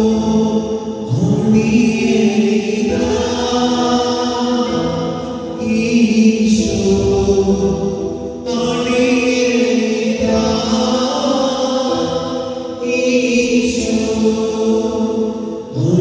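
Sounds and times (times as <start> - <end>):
voices singing a slow hymn: 0.0 - 16.0.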